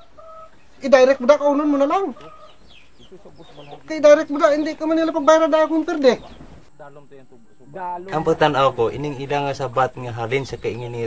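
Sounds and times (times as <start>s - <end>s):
faint chickens clucking: 0.0s - 9.7s
man talking: 0.8s - 11.0s.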